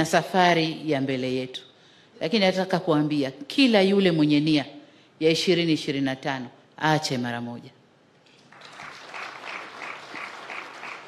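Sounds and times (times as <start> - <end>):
audience applauding: 8.5 - 11.0.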